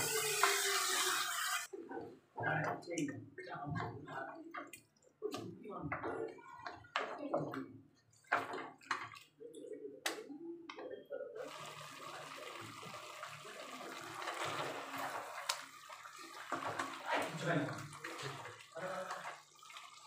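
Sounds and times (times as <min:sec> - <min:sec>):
curry sizzling: 0:11.4 - 0:20.0.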